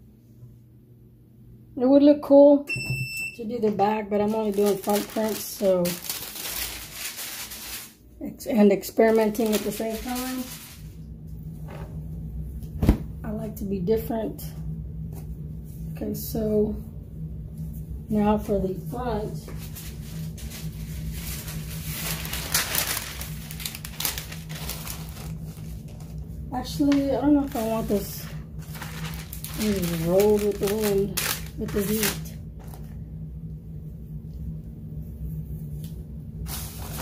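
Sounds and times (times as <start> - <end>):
low hum: 2.7 - 37.0
paper sheet rustling: 4.1 - 8.0, 9.0 - 11.0, 19.4 - 32.9, 36.5 - 37.0.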